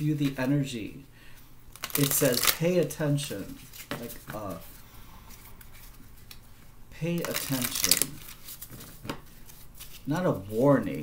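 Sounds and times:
cards clicking: 7.2s - 9.2s.

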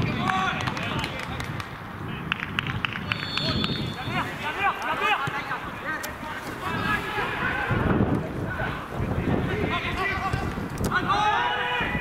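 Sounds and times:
players shouting: 3.2s - 12.0s.

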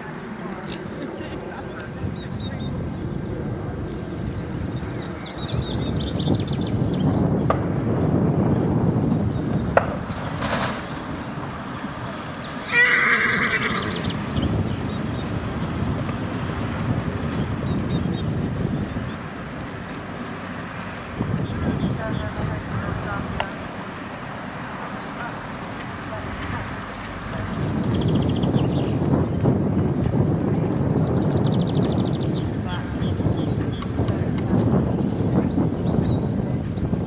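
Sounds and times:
horse whinnying: 12.7s - 14.2s.

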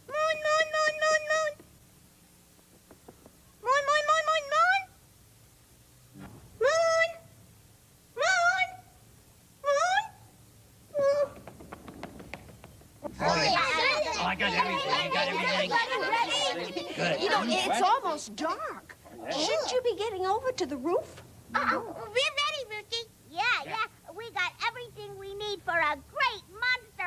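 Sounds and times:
overlapping voices chattering: 12.4s - 20.0s.

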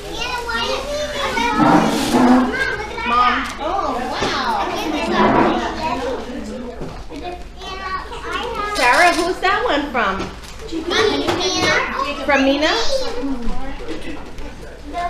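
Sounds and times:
children talking and calling out: 0.0s - 9.6s, 10.5s - 15.0s.

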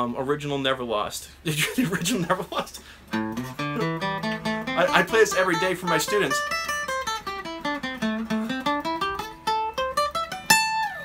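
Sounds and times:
acoustic guitar picked notes: 2.8s - 11.0s
strummed guitar chord: 3.2s - 11.0s.

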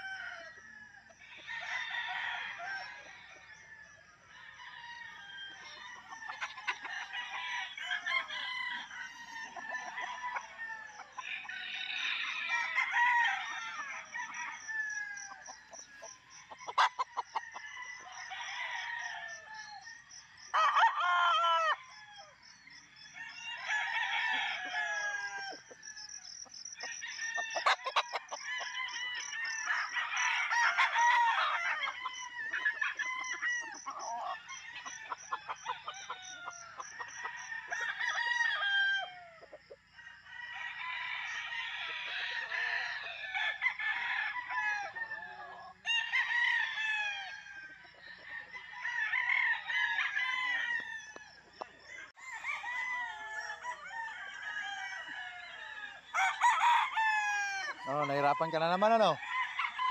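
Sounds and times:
roosters crowing: 0.0s - 59.9s.

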